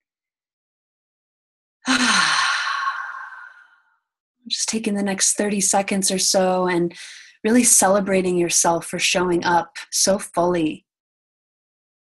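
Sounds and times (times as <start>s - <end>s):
person sighing: 1.9s - 3.7s.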